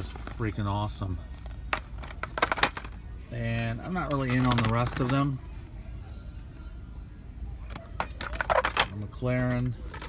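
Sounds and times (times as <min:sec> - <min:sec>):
plastic toy package clicking: 0:04.3 - 0:05.2.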